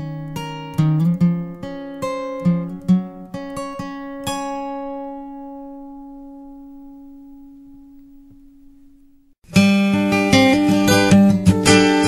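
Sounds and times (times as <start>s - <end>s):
strummed acoustic guitar chord: 0.0s - 12.0s.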